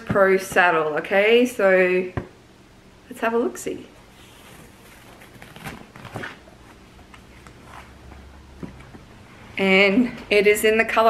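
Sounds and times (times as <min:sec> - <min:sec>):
fabric rustling: 0:04.1 - 0:08.3.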